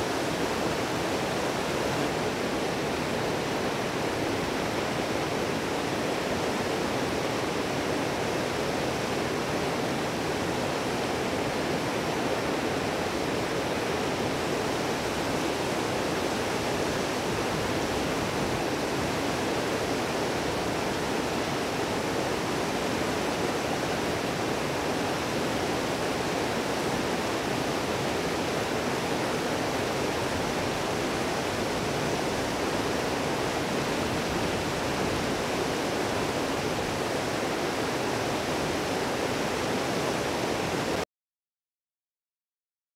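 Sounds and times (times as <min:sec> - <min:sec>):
river rushing over boulders: 0:00.0 - 0:41.0.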